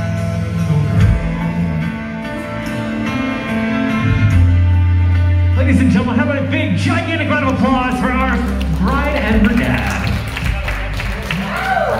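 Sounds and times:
music: 0:00.0 - 0:11.9
man speaking over pa system: 0:05.6 - 0:11.0
people clapping: 0:07.5 - 0:11.9.

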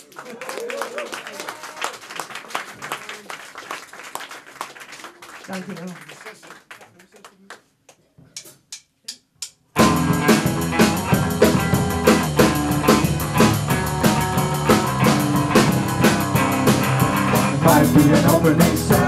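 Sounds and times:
rock band playing: 0:09.8 - 0:19.0.

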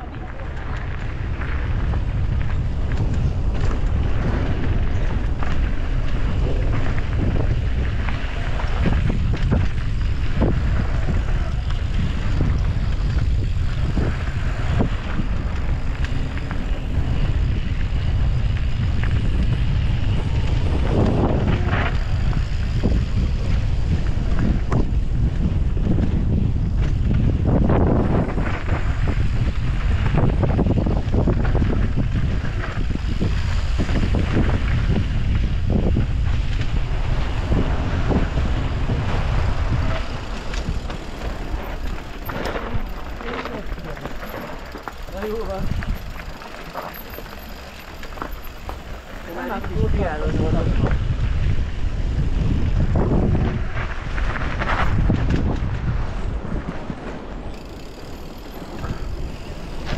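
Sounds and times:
tyres crunching on gravel: 0:00.0 - 0:59.9
wind buffeting microphone: 0:00.0 - 0:59.9
bike knocks and rattles: 0:00.3 - 0:50.2, 0:52.4 - 0:59.9.

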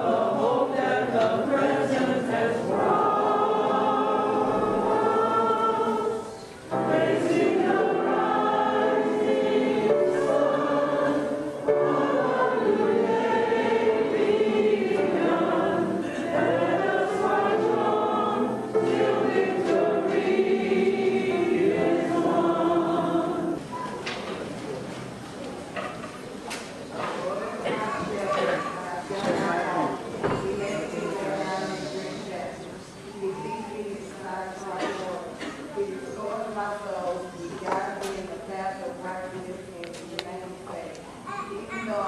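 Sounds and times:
upright piano: 0:00.0 - 0:23.8
youth choir singing gospel: 0:00.0 - 0:23.8.

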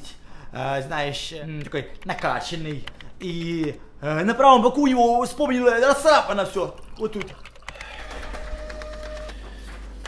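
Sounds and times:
printer whine: 0:07.8 - 0:09.5
printer whirring and clicking: 0:07.8 - 0:10.0.

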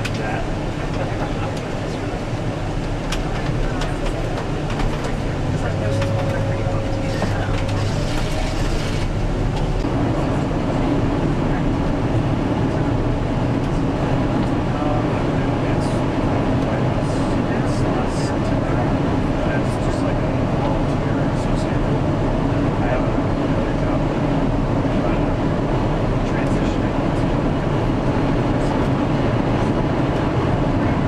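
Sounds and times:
road and engine noise in vehicle: 0:00.0 - 0:31.0.

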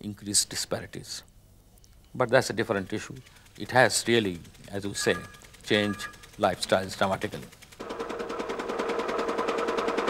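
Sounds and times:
small pump engine running: 0:02.5 - 0:10.0.

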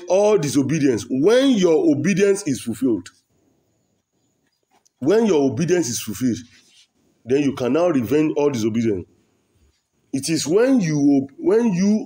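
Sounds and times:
man speaking: 0:00.0 - 0:03.2, 0:05.0 - 0:06.6, 0:07.2 - 0:09.1, 0:10.1 - 0:12.0.

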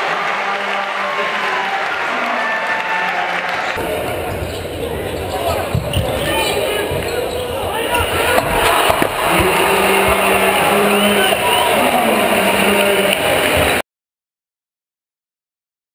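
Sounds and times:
crowd noise: 0:00.0 - 0:13.8
sneakers squeaking: 0:03.8 - 0:11.7.

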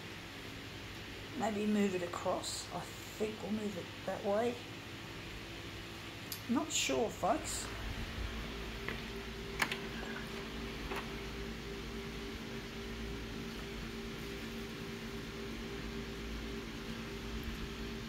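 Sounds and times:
photocopier fan hum: 0:00.0 - 0:18.0.

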